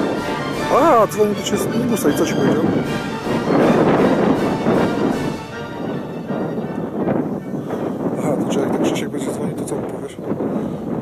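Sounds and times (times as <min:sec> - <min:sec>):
music playing: 0:00.0 - 0:07.5
steady rushing noise: 0:00.0 - 0:11.0.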